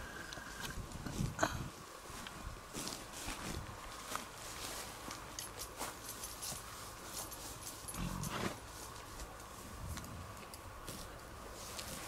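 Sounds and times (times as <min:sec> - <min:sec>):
footsteps in grass: 0:00.6 - 0:10.0, 0:10.8 - 0:12.0.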